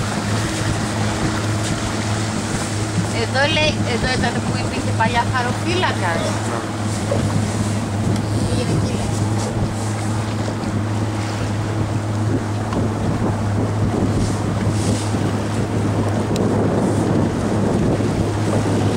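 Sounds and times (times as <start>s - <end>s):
motorboat engine humming: 0.0s - 18.9s
water rushing past hull: 0.0s - 18.9s
wind buffeting microphone: 0.0s - 18.9s.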